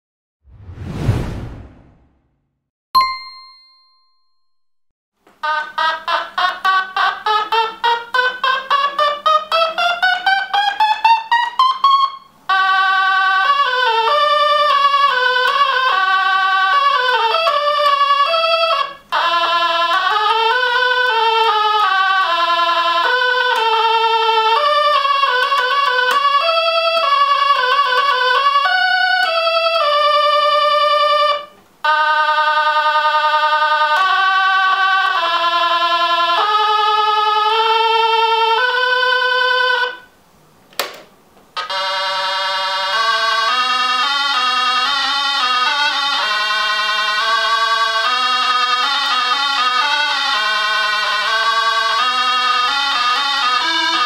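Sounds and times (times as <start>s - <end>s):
toy synthesizer melody: 41.6s - 54.0s.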